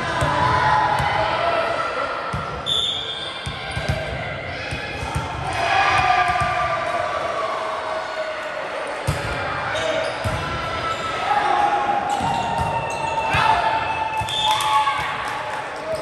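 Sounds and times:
volleyball bouncing on gym floor: 0:03.4 - 0:06.6, 0:10.2 - 0:10.5.

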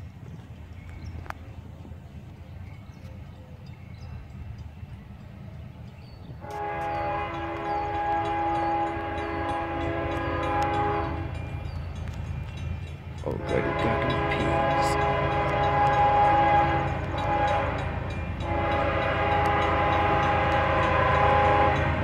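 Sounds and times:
diesel locomotive rumble: 0:00.0 - 0:22.0
train air horn chord: 0:06.4 - 0:11.4, 0:13.3 - 0:22.0.

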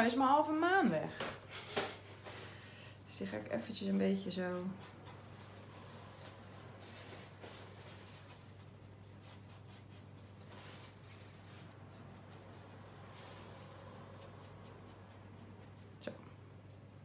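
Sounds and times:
steady low hum: 0:00.0 - 0:17.0
wipe rubbing paper: 0:03.8 - 0:16.0.

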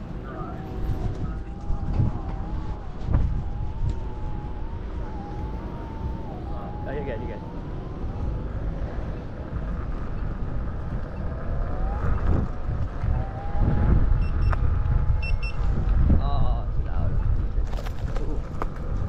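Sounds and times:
electric motor whine: 0:00.0 - 0:16.1
wind rushing over microphone: 0:00.0 - 0:19.0.

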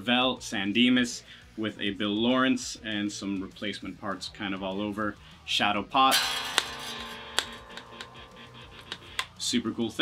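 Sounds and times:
electric guitar chord ringing: 0:06.1 - 0:09.4.

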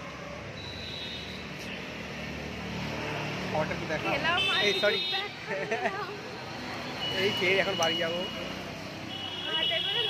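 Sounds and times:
street background noise: 0:00.0 - 0:10.0.

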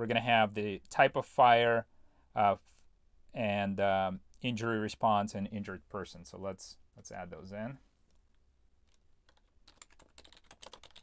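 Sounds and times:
keyboard typing: 0:08.8 - 0:11.0.

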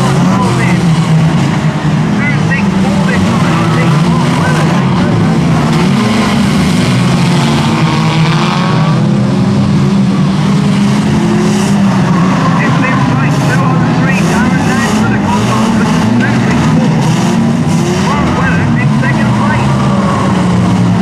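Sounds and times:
race car engines revving: 0:00.0 - 0:21.0.

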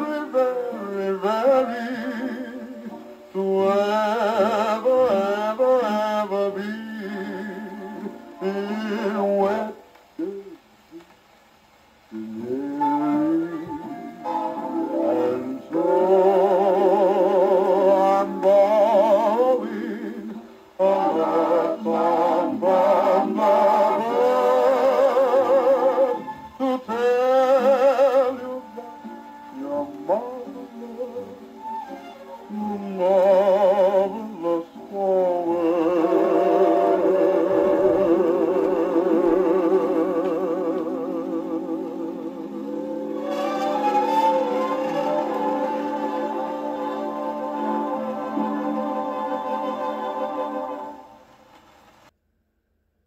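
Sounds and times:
big band on old record: 0:00.0 - 0:52.1.

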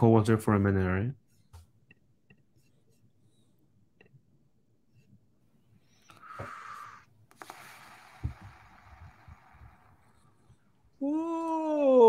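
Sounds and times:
faint hiss: 0:06.0 - 0:10.7.

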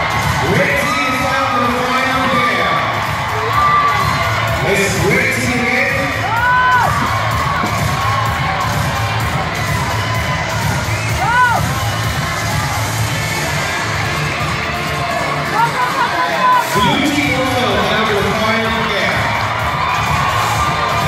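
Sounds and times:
children shouting and cheering: 0:00.0 - 0:21.0.

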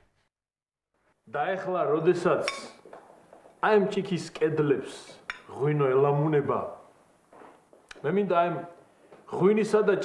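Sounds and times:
man speaking: 0:01.3 - 0:02.8, 0:03.6 - 0:06.9, 0:07.9 - 0:10.0
tableware clink: 0:02.4 - 0:02.8, 0:05.3 - 0:05.5.

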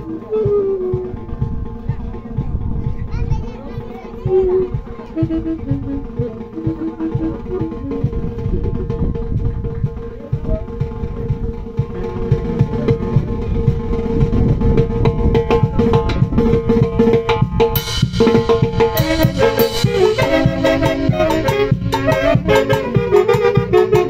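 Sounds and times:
live band dance music: 0:00.0 - 0:24.0.

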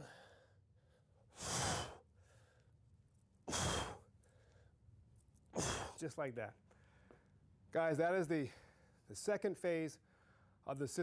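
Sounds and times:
man breathing heavily: 0:00.0 - 0:02.8, 0:03.4 - 0:04.9, 0:05.5 - 0:06.0, 0:06.7 - 0:07.4, 0:08.4 - 0:09.1, 0:10.0 - 0:10.6.

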